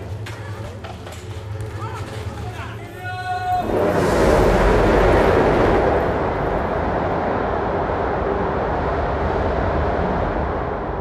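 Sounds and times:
dense rumbling electroacoustic noise: 0.0s - 11.0s.

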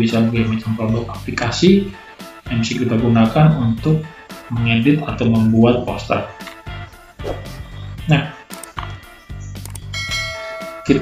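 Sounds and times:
quiet background music: 0.0s - 11.0s
notification bell chime: 9.9s - 11.0s.

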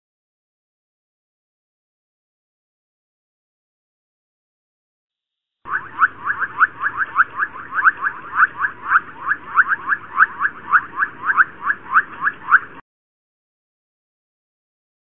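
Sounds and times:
high chirping calls: 5.7s - 12.8s.

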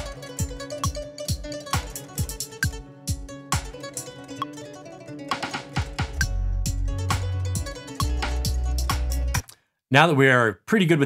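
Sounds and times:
kick-drum beat: 0.0s - 3.9s, 5.6s - 9.4s
plucked guitar-like strings: 0.0s - 9.4s
deep bass: 6.2s - 9.4s.

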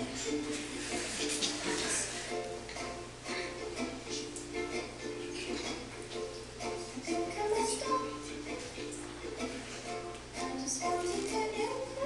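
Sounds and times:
plucked-string song over loudspeaker: 0.0s - 12.0s.

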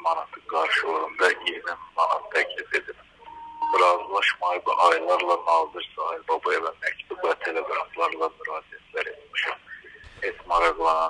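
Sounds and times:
man talking over telephone: 0.0s - 3.0s, 3.6s - 11.0s
electronic beep: 3.2s - 4.1s.

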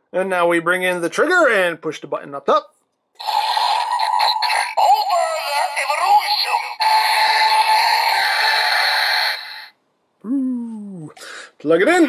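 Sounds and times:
toy electronic sound effects: 3.2s - 9.7s
toy synthesized voice: 3.2s - 9.7s.

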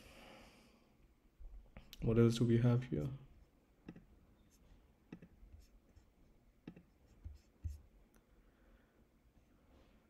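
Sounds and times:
computer mouse clicks: 3.8s - 4.1s, 5.1s - 5.3s, 6.6s - 6.9s.

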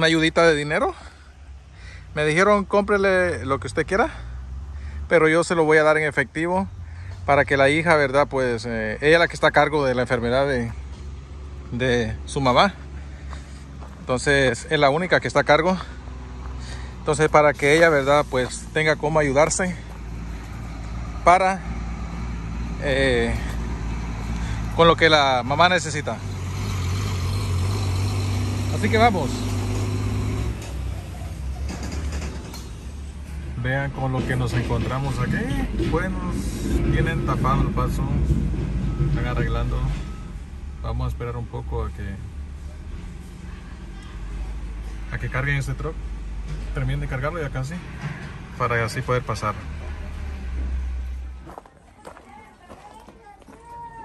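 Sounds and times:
low car engine rumble: 6.0s - 54.0s.

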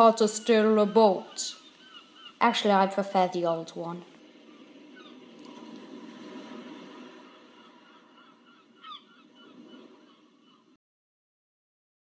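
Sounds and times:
honking bird-like call: 7.0s - 10.7s.

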